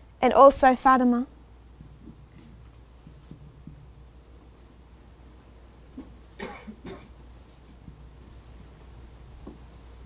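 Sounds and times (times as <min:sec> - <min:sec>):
person coughing: 0:06.4 - 0:07.2.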